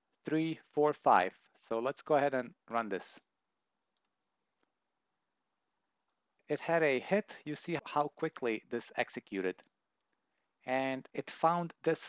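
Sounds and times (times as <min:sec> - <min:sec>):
faint mouse clicks: 0:03.9 - 0:04.8.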